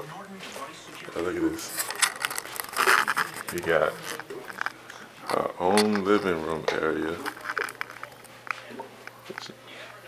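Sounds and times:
crinkling handling noise: 0:00.3 - 0:09.6.

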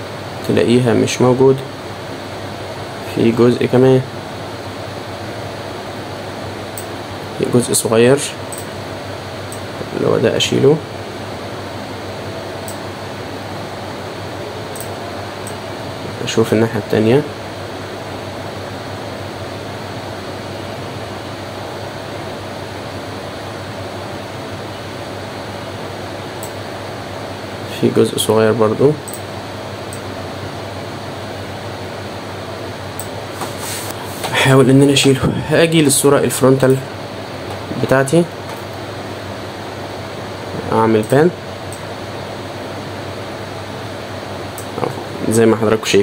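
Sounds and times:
fan humming: 0:00.0 - 0:46.0.

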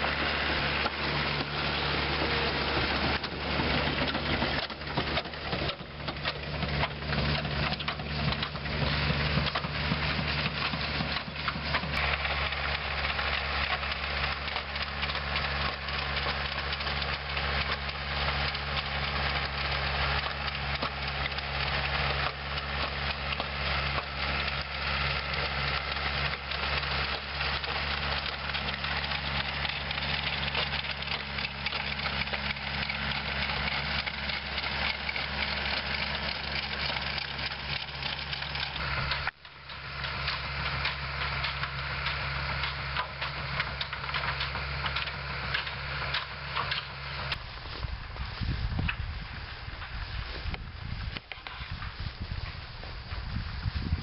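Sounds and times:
manure spreader clatter: 0:00.0 - 0:54.0
tractor engine running: 0:00.0 - 0:54.0.

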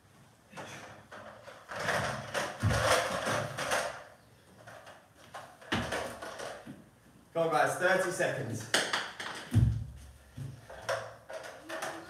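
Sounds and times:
dumbbell workout thuds: 0:09.5 - 0:10.7.

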